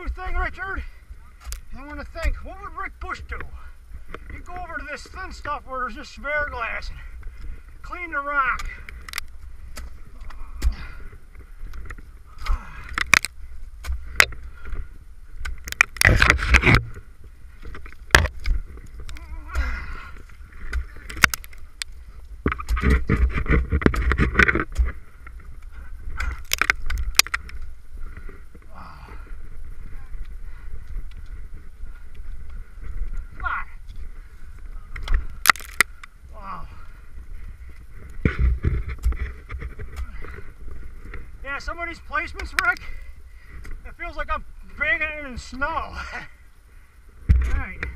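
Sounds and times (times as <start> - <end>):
crunching and scraping on ice: 4.0 - 36.2
ice axes striking ice: 12.4 - 14.4, 18.1 - 18.6, 20.6 - 21.6, 26.1 - 27.5, 35.4 - 36.0.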